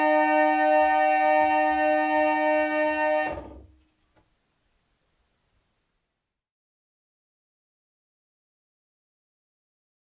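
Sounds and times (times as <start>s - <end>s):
reed organ chord: 0.0s - 3.7s.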